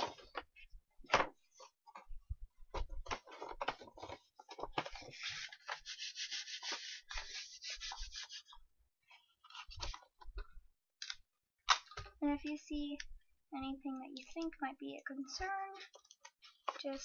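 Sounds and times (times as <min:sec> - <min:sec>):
paper sheets rustling: 0:02.7 - 0:08.6, 0:09.4 - 0:10.2.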